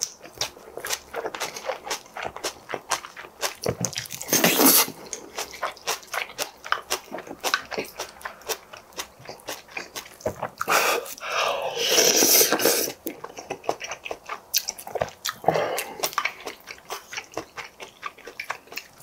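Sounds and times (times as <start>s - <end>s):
wet chewing and crunching: 0.0s - 19.0s.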